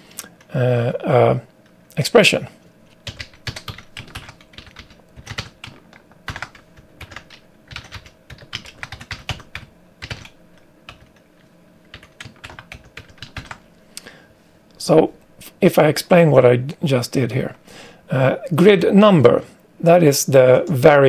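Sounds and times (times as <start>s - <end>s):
typing on a keyboard: 3.0s - 11.2s, 11.9s - 13.6s.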